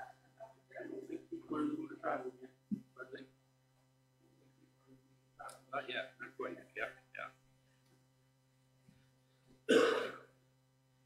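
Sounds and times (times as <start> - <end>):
person coughing: 9.7 - 10.3.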